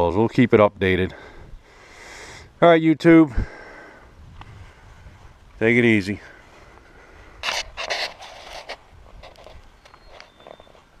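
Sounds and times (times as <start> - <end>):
camera handling rustles: 7.4 - 10.9.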